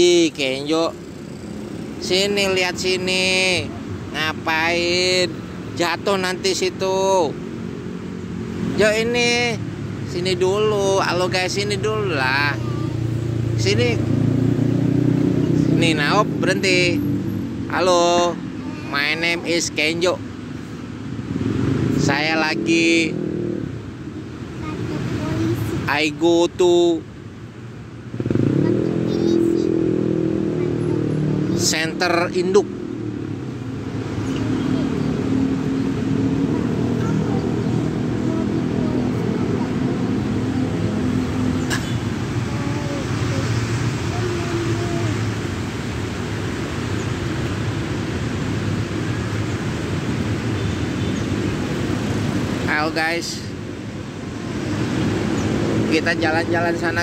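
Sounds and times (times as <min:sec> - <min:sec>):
vehicle engine speeding up: 0:06.5 - 0:25.9, 0:28.1 - 0:50.6, 0:51.3 - 0:57.0
person speaking: 0:08.6 - 0:14.1, 0:17.7 - 0:20.3, 0:42.1 - 0:45.4.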